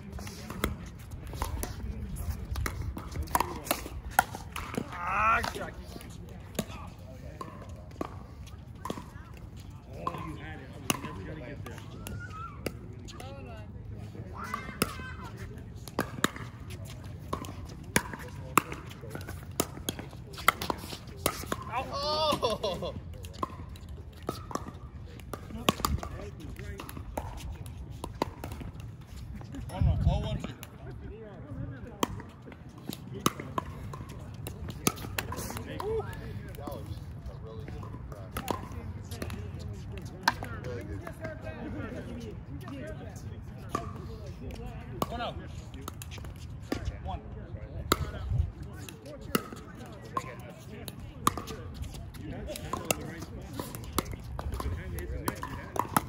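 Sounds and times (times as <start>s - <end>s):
players' voices: 0.0s - 56.0s.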